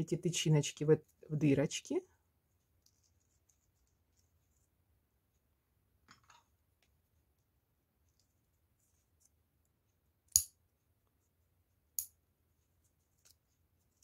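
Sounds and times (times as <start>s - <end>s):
faint handling rustle: 2.4s - 5.5s.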